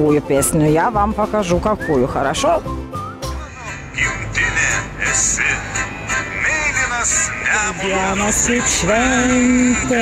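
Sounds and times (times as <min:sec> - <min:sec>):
man singing over backing music: 0:03.4 - 0:10.0.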